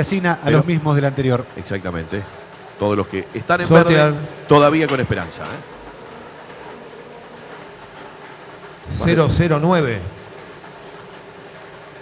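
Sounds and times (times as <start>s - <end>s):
balls tumbling in machine: 0.9s - 12.0s.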